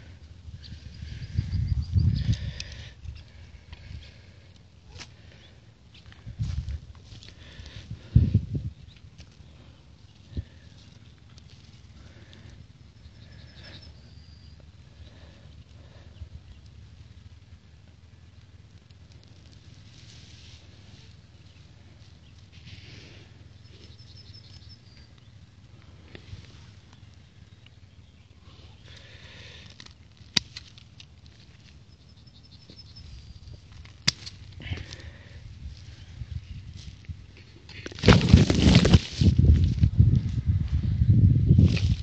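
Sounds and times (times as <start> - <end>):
hands rustling in grass and soil: 0.0 - 42.0
leaves brushing microphone: 19.2 - 23.9, 37.7 - 40.7
pruning shears snipping: 33.8 - 34.5.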